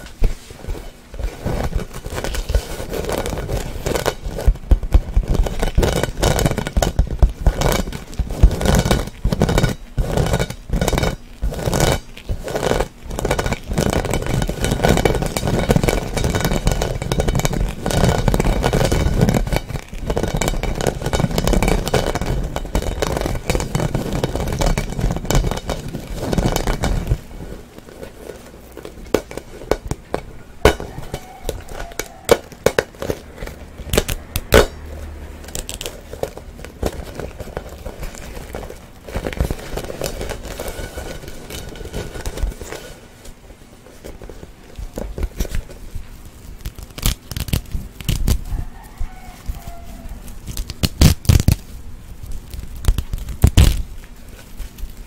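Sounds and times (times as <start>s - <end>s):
fingers scraping mesh-wrapped ball: 0.0s - 55.0s.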